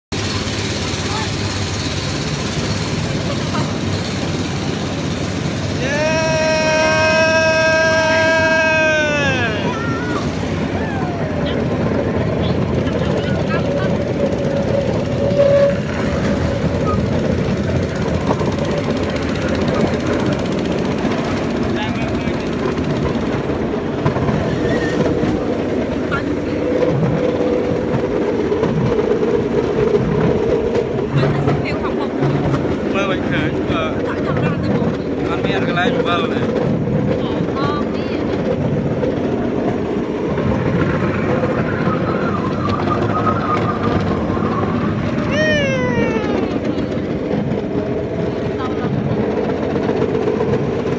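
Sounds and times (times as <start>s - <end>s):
vehicle running: 0.1s - 50.9s
people chattering: 5.8s - 15.0s.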